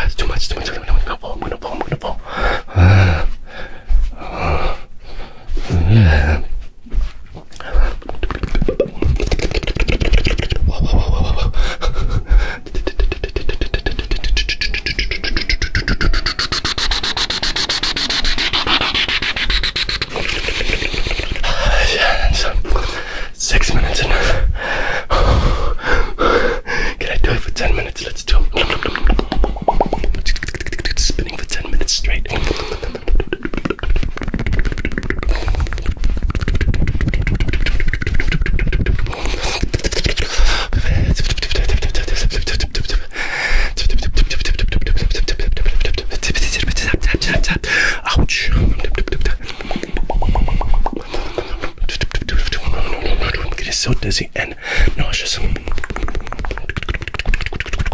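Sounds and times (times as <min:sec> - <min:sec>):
mouth clicks and smacks: 0:00.0 - 0:57.9.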